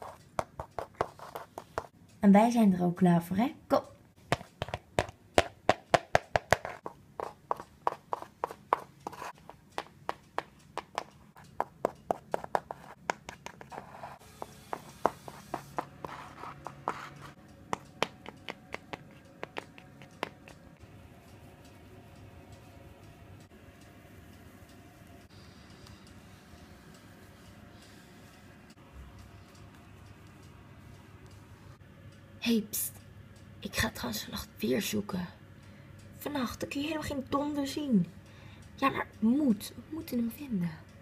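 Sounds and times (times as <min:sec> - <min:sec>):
plastic toy hooves tapping floor: 0:00.1 - 0:01.9, 0:04.3 - 0:20.8.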